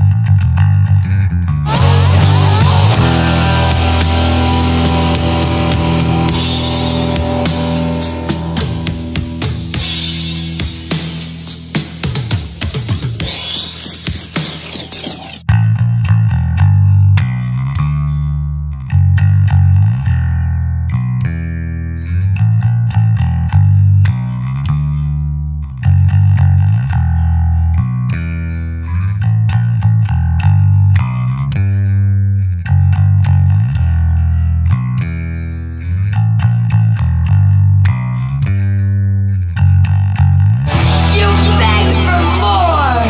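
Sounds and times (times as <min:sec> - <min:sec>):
electric bass picked low notes: 0:00.0 - 0:13.5, 0:15.2 - 0:43.0.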